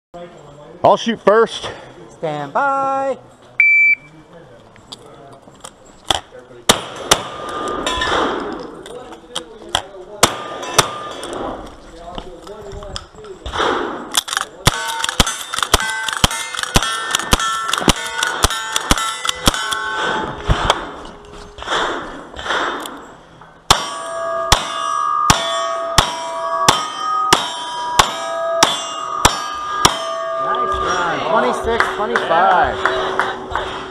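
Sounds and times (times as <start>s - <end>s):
metallic clang of steel targets: 6.1s - 8.6s, 10.2s - 11.6s, 13.4s - 32.9s.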